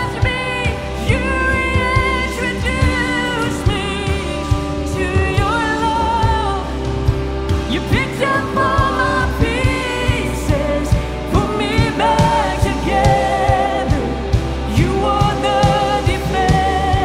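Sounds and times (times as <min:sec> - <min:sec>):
electric guitar: 0:00.0 - 0:17.0
keyboard: 0:00.0 - 0:17.0
steady drum beat: 0:00.0 - 0:17.0
woman singing: 0:00.0 - 0:17.0.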